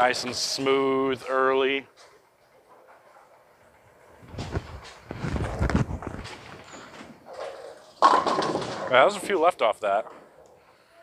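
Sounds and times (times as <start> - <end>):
bowling pins crashing: 4.2 - 9.2.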